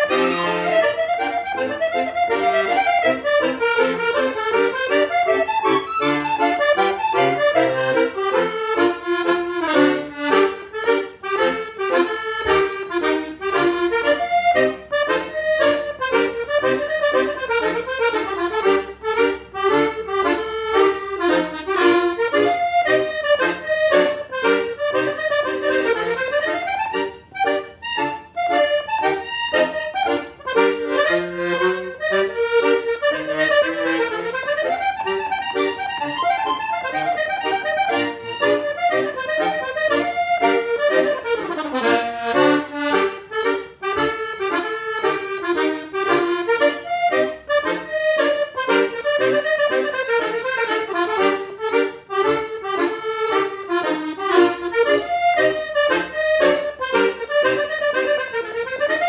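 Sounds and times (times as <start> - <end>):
piano accordion playing fast tune: 0.0 - 59.0.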